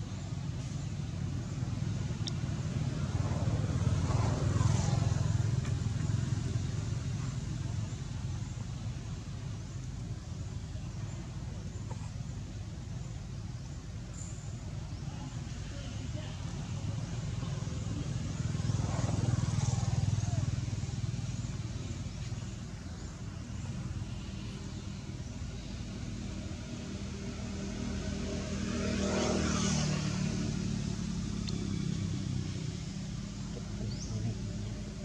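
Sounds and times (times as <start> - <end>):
passing vehicle engines rumbling: 0.0 - 35.0.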